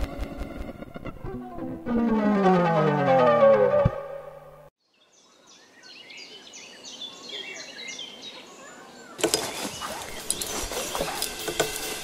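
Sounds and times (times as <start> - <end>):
music: 0.0 - 4.7, 10.1 - 12.0
faint woodland ambience: 4.8 - 12.0.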